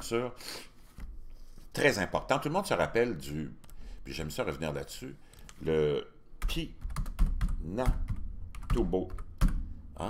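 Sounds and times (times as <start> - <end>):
computer keyboard keystrokes: 6.4 - 9.6.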